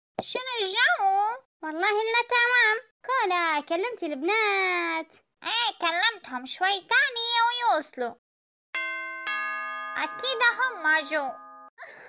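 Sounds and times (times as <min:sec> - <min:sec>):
two-note doorbell chime: 0:08.8 - 0:11.7.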